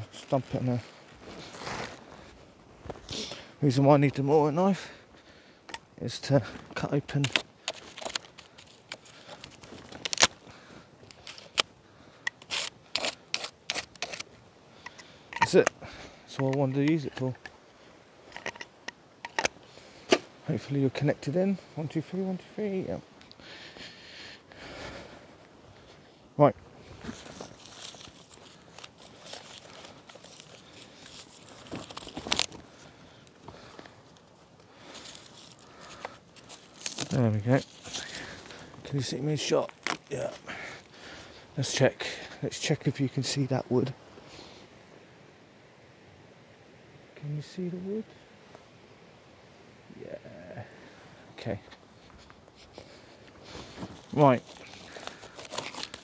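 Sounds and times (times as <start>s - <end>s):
plastic rustling: 7.2s - 10.4s, 27.0s - 32.9s, 34.9s - 38.7s, 53.7s - 56.0s
knife cutting plastic packaging: 54.4s - 56.0s.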